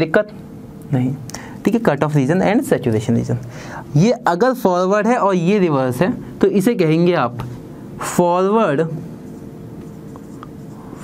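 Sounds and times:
low room hum: 0:00.0 - 0:11.0
marker writing on whiteboard: 0:09.2 - 0:11.0.

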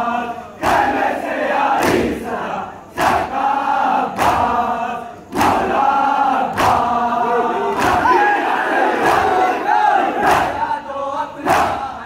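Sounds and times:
men chanting: 0:00.0 - 0:12.0
hands striking chests in unison: 0:01.8 - 0:02.2, 0:04.1 - 0:04.6, 0:05.3 - 0:05.8, 0:06.5 - 0:07.0, 0:07.7 - 0:08.2.

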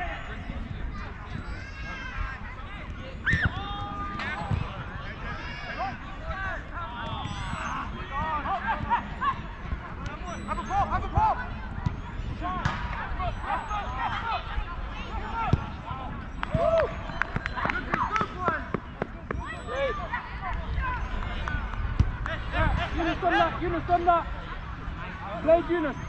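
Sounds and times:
players shouting: 0:03.2 - 0:18.7.

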